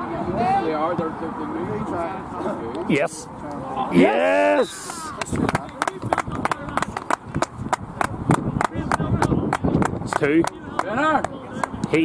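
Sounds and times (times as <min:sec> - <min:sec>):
sharp hand claps: 0:04.8 - 0:12.0.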